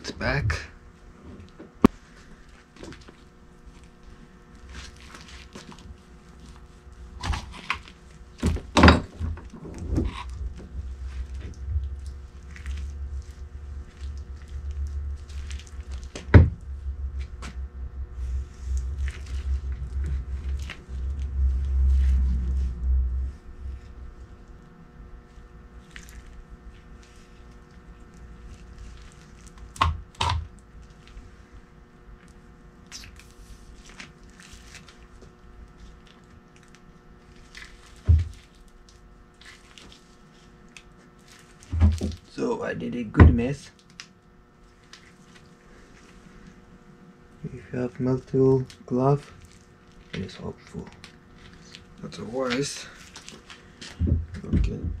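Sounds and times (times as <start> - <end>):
faint steady hum: 0.0 - 55.0
low rumbling: 8.2 - 29.1
knocks and thuds on workbench: 8.4 - 9.4, 16.2 - 16.6.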